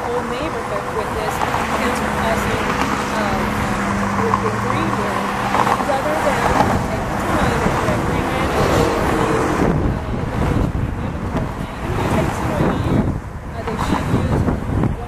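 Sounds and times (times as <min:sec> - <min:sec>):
low vehicle hum: 0:00.0 - 0:15.0
road traffic noise: 0:00.0 - 0:15.0
wind on microphone: 0:00.0 - 0:15.0
woman speaking: 0:00.0 - 0:15.0.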